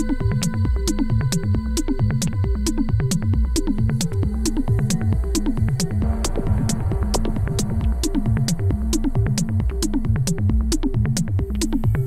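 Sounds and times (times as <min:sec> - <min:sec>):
synthesizer techno: 0:00.0 - 0:12.0
low pulsing bass: 0:04.2 - 0:11.9.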